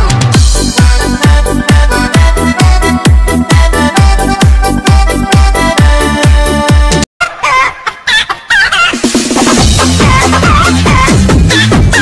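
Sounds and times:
techno beat: 0:00.0 - 0:07.0, 0:08.9 - 0:12.0.

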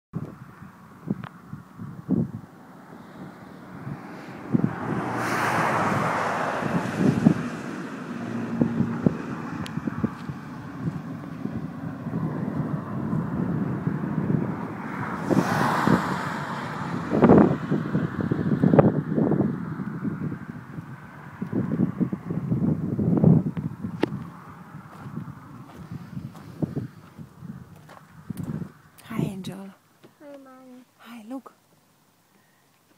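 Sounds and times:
wind buffeting microphone: 0:00.2 - 0:29.7
moving car rush: 0:00.2 - 0:29.9.

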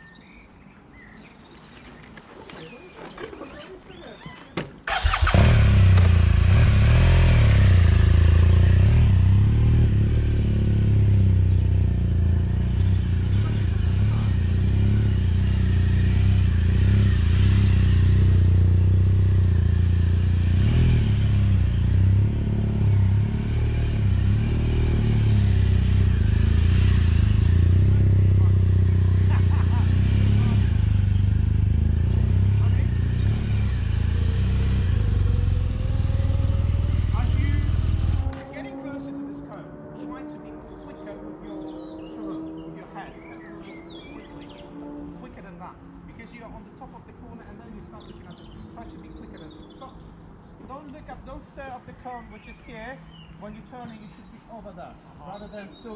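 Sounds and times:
motorcycle engine revving: 0:04.8 - 0:51.4.

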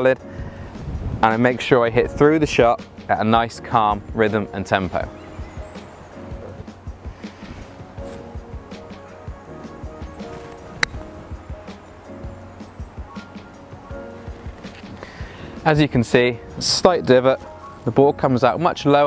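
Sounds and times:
background music: 0:00.0 - 0:19.0
golf club striking ball: 0:10.2 - 0:11.9.

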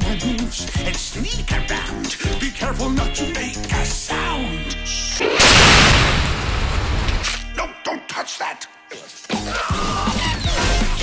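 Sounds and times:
large explosion blast and rumble: 0:05.2 - 0:07.2.

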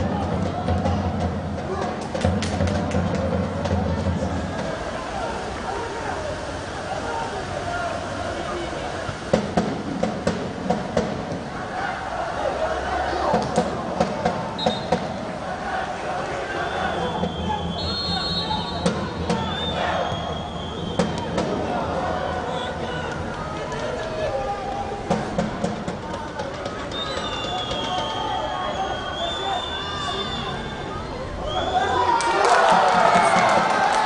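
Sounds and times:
drum beaten in quick pairs: 0:00.0 - 0:05.0, 0:09.1 - 0:11.6, 0:13.2 - 0:15.5, 0:16.8 - 0:22.2, 0:24.8 - 0:28.4, 0:32.5 - 0:34.0
players shouting: 0:00.0 - 0:09.4, 0:10.9 - 0:34.0
stadium crowd noise: 0:00.0 - 0:34.0.

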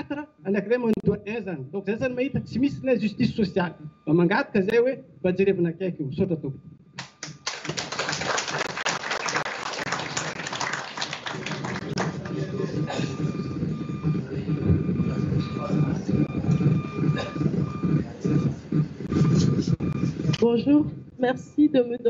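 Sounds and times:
audience applauding: 0:07.0 - 0:12.9
people murmuring and chatting: 0:07.2 - 0:22.0.

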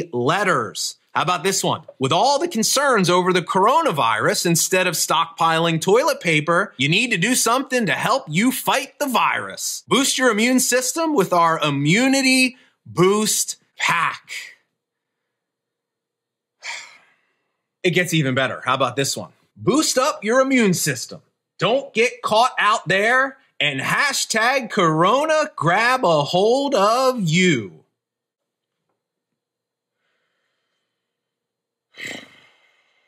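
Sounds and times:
man sighing: 0:16.6 - 0:17.2.

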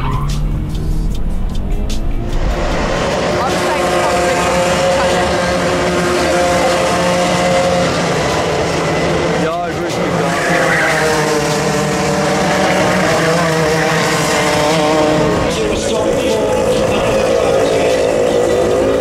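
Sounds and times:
kart passing close: 0:00.0 - 0:19.0
racing kart engines: 0:00.0 - 0:19.0.

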